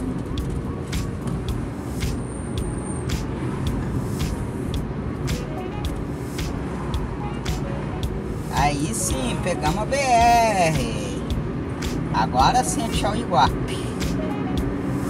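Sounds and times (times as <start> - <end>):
engine and tyre rumble: 0.0 - 15.0.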